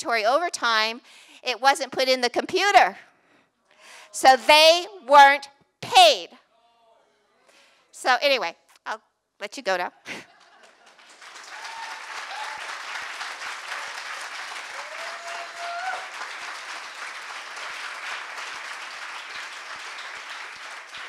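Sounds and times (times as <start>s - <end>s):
audience applauding: 10.4s - 21.0s.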